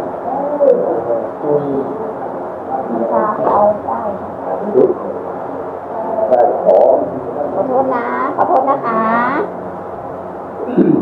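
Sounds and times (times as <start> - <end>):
person speaking: 0.0 - 9.5
droning hum of voices: 0.0 - 11.0.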